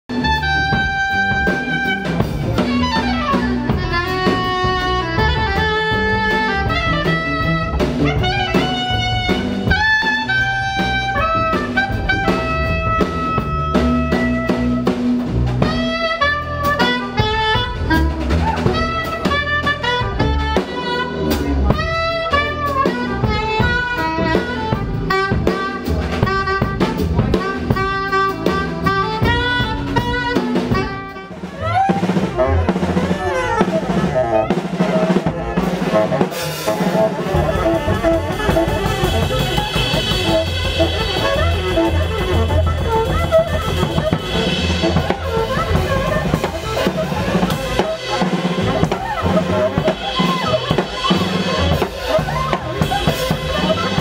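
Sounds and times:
double bass: 0:00.0 - 0:54.0
drum kit with rimshots: 0:00.1 - 0:54.0
soprano saxophone melody: 0:00.1 - 0:54.0.

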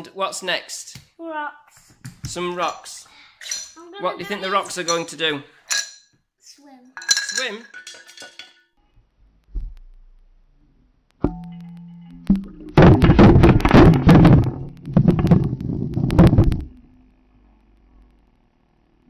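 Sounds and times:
underwater knock with ring: 0:11.2 - 0:16.7
rocks clattering underwater: 0:11.2 - 0:16.8.

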